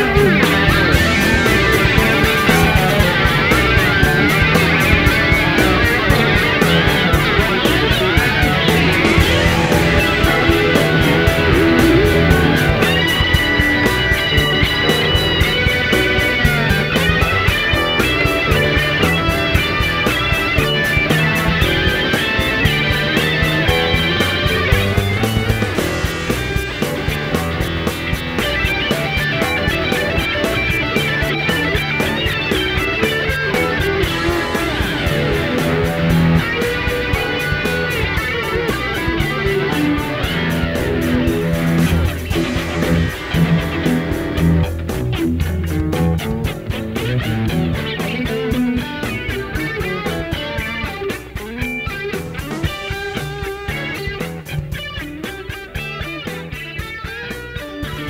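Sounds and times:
bass guitar: 0.0s - 58.0s
electric guitars bending notes: 0.0s - 58.0s
programmed drums beat: 0.0s - 58.0s.

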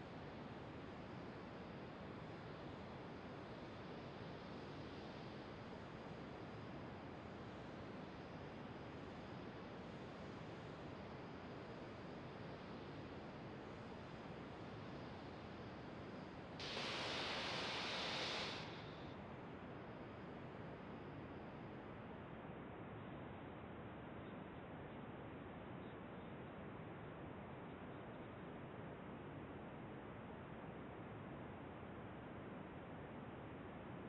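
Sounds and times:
rocket venting vapour hiss: 16.6s - 19.1s.

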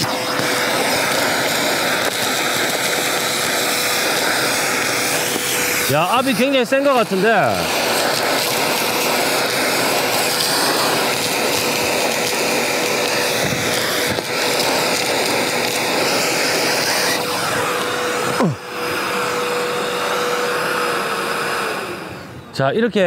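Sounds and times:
screws sucked into vacuum nozzle: 0.0s - 22.3s
vacuum running with whine: 0.0s - 23.0s.

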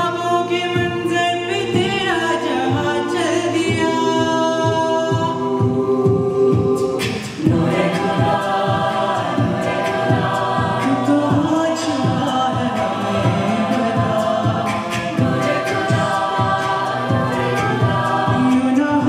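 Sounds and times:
a cappella group singing: 0.0s - 19.0s
vocal percussion beat: 0.0s - 19.0s.

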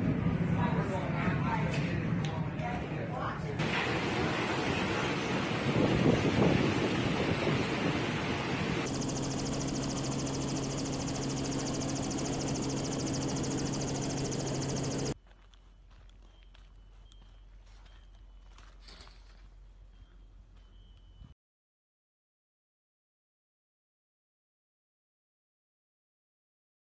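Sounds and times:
strong wind buffeting microphone: 4.0s - 8.9s.

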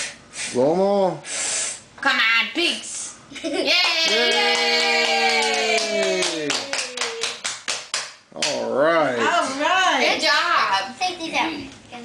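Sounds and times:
person cheering: 3.7s - 7.4s
hand clapping: 3.8s - 8.6s.

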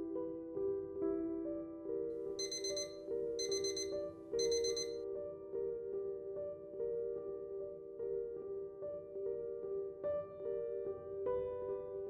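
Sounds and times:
soft piano music: 0.0s - 12.0s
alarm clock beeping: 2.4s - 5.0s.

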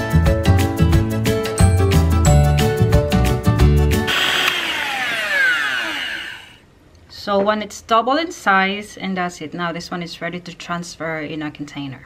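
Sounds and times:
hand mixer motor whine: 4.1s - 6.6s.

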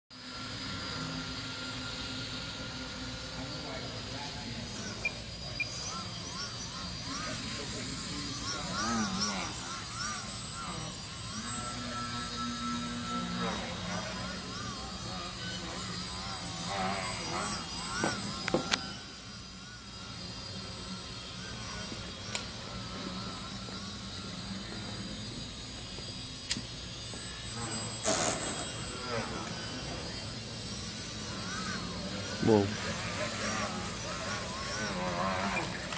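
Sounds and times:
model plane motor whining: 0.2s - 35.9s.

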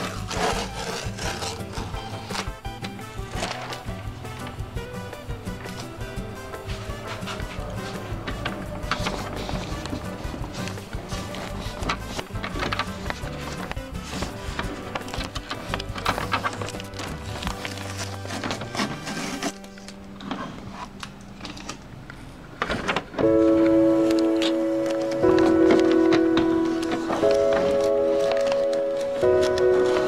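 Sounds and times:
background music with percussive beat: 1.6s - 17.3s.

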